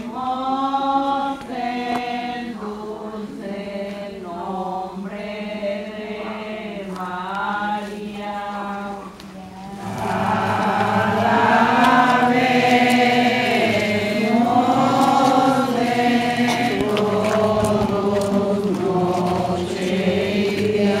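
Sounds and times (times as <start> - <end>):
group singing a hymn in unison: 0.0 - 21.0.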